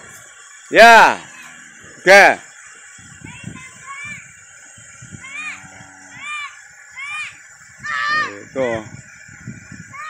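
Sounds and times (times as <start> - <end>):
child calling out: 6.2 - 8.4.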